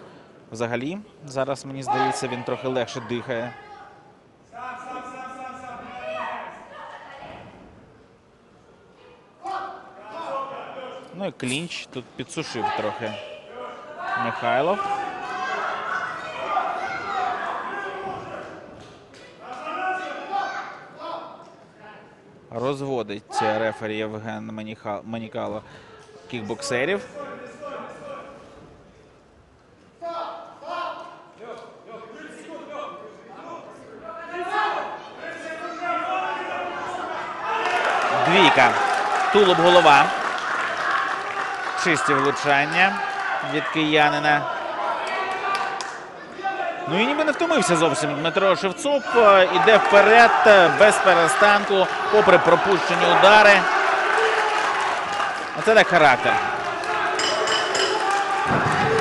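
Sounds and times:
crowd noise: 0:00.0 - 0:24.3, 0:25.8 - 0:59.0
man calling out in a hall: 0:00.6 - 0:06.9, 0:09.4 - 0:15.9, 0:19.4 - 0:25.7, 0:30.0 - 0:40.2, 0:46.4 - 0:53.8
voices shouting: 0:12.5 - 0:18.5, 0:34.3 - 0:59.0.

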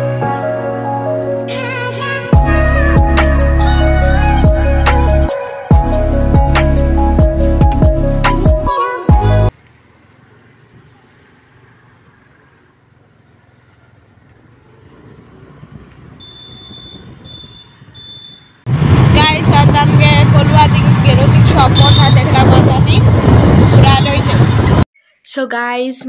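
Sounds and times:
low road rumble: 0:02.4 - 0:24.9
short high beeps: 0:16.2 - 0:18.6
wind buffeting microphone: 0:16.7 - 0:18.0, 0:18.7 - 0:24.9
boy speaking: 0:25.2 - 0:26.0.

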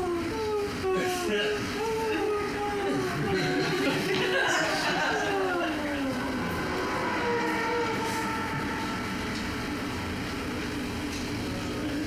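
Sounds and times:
people yawning: 0:00.0 - 0:09.9.

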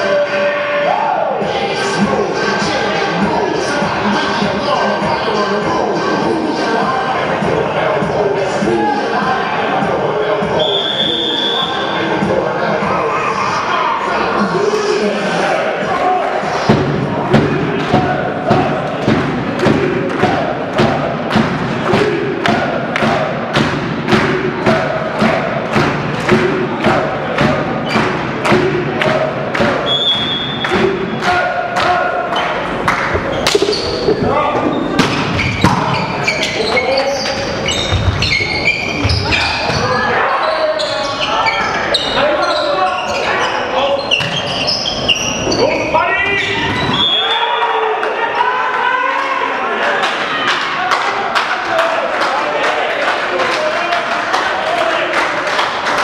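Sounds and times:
crowd chanting: 0:00.0 - 0:42.4
referee whistle: 0:10.6 - 0:12.0, 0:29.8 - 0:30.6, 0:46.4 - 0:47.5
spectators clapping in rhythm: 0:16.8 - 0:33.8, 0:49.8 - 0:56.0
sneakers squeaking on floor: 0:27.8 - 0:28.3, 0:29.8 - 0:31.1, 0:32.3 - 0:47.4
volleyball being struck: 0:33.1 - 0:35.8.

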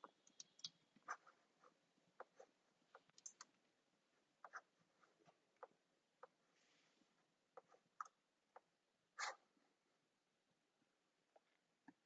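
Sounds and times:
keyboard and mouse clicking: 0:03.0 - 0:03.6.

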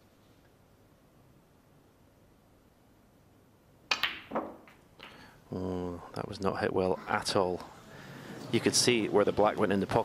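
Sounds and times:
cue tip striking ball: 0:03.9 - 0:05.2
snooker balls knocking: 0:03.9 - 0:05.3.

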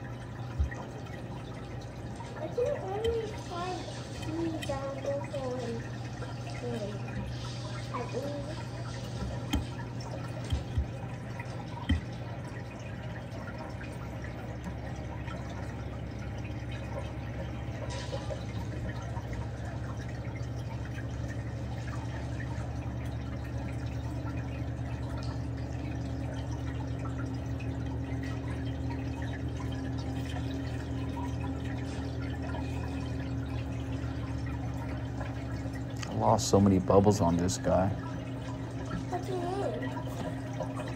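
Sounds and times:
water pumps humming: 0:00.0 - 0:40.9
water trickling and dripping: 0:00.0 - 0:40.9.

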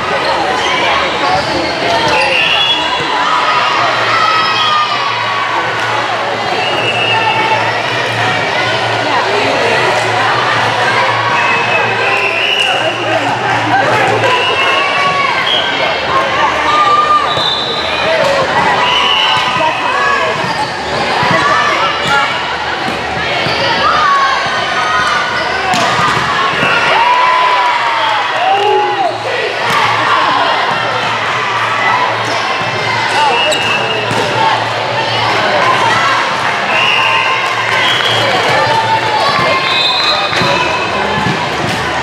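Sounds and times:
echoing hubbub of voices: 0:00.0 - 0:42.0.

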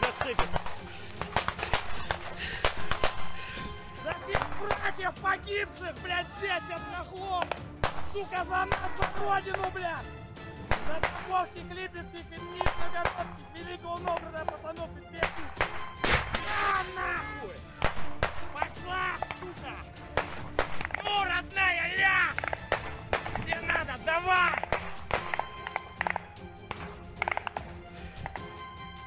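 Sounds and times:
sharp gunshots at close range: 0:00.0 - 0:03.4, 0:04.3 - 0:05.0, 0:07.4 - 0:09.8, 0:10.6 - 0:11.3, 0:12.6 - 0:13.3, 0:15.2 - 0:16.9, 0:17.7 - 0:19.4, 0:20.1 - 0:21.0, 0:22.4 - 0:23.6, 0:24.6 - 0:27.6.

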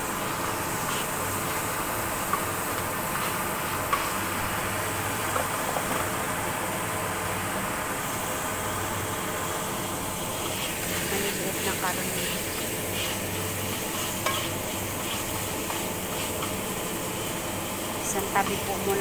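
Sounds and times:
meat sizzling in hot oil: 0:00.0 - 0:19.0.

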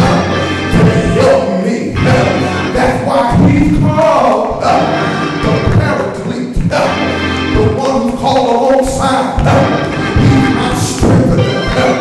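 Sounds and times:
live church music: 0:00.0 - 0:12.0.

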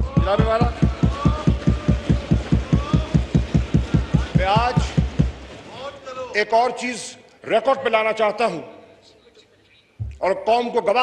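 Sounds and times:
voices calling out: 0:00.0 - 0:05.6
people thumping wooden desks: 0:00.0 - 0:05.7.

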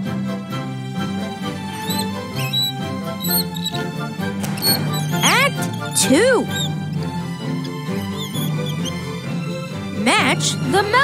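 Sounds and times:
high squeaky chirps: 0:01.6 - 0:07.1, 0:07.7 - 0:09.2
cartoon music with low notes: 0:01.6 - 0:11.0.

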